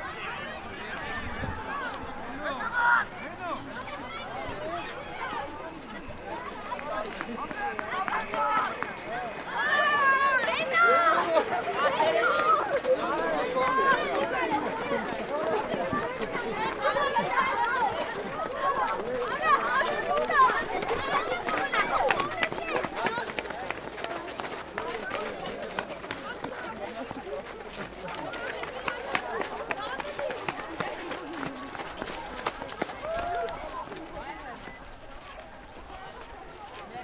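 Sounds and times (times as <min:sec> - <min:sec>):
children calling out excitedly: 0:00.0 - 0:23.5.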